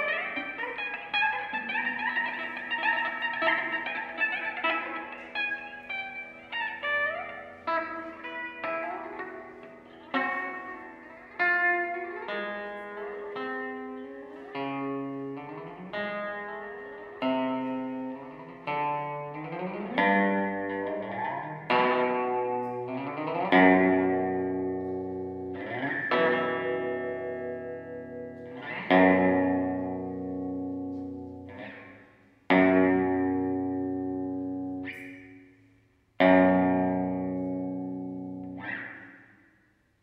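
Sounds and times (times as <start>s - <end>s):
electric guitar notes and chords: 0.0s - 39.5s.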